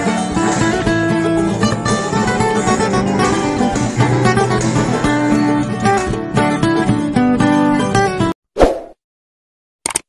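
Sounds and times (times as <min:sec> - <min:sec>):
guitar background music: 0:00.0 - 0:08.3.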